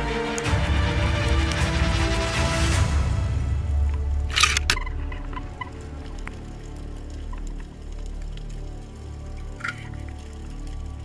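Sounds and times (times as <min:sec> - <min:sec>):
faint clicks: 0:03.8 - 0:11.0.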